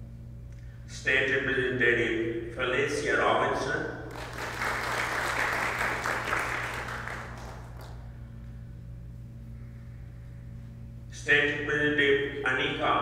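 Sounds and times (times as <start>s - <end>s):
low steady hum: 0.0s - 13.0s
audience applauding: 4.1s - 8.0s.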